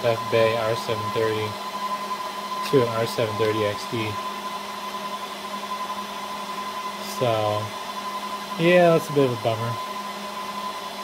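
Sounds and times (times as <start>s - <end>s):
server cooling fans running: 0.0s - 11.0s.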